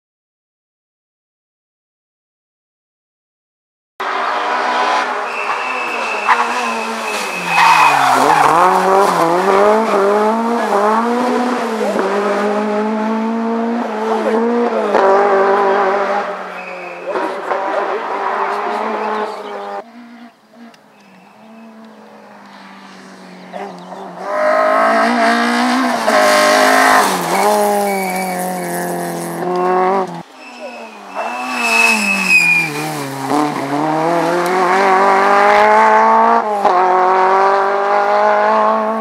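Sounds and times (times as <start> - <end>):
car engine revving: 4.0 - 39.0.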